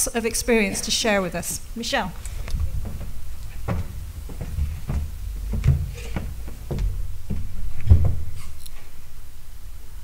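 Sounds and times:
low rumble: 2.1 - 8.4
knocks and thumps on lectern: 2.2 - 8.4.

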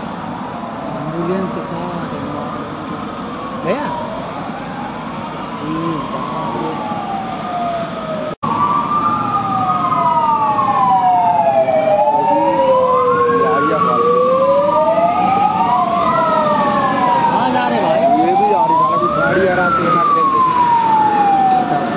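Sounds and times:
vehicle sirens wailing: 0.0 - 21.9.

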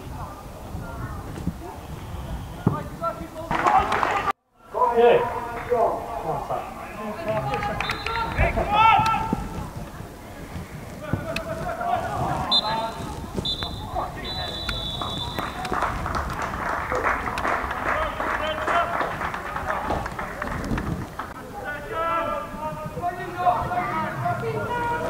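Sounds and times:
voices calling out: 0.0 - 25.0.

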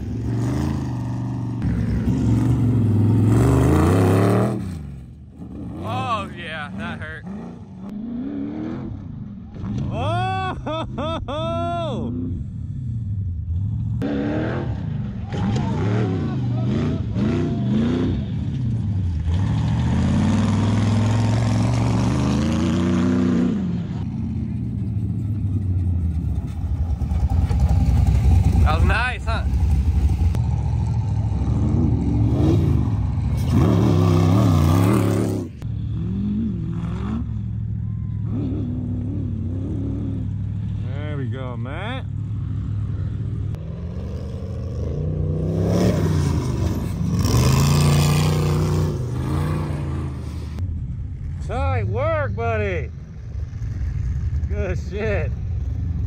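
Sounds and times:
off-road vehicle engines revving: 0.0 - 56.0.

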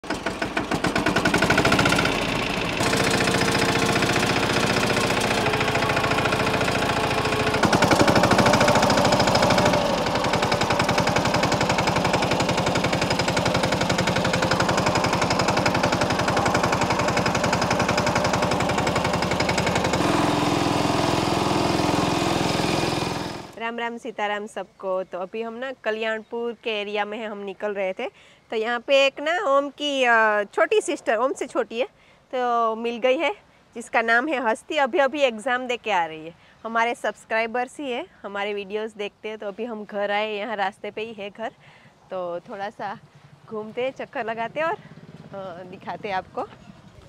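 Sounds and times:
tractor diesel engine chugging: 0.0 - 23.6, 42.9 - 47.0.

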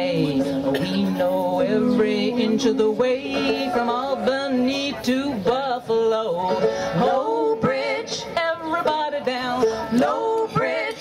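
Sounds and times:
strummed banjo: 0.0 - 11.0
women singing in harmony: 0.0 - 11.0.

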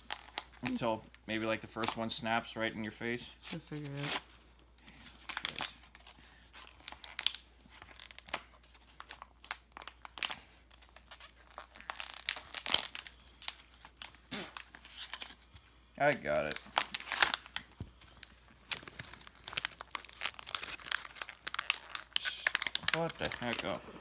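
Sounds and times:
paper packaging tearing and crinkling: 3.3 - 4.3, 5.2 - 24.0.

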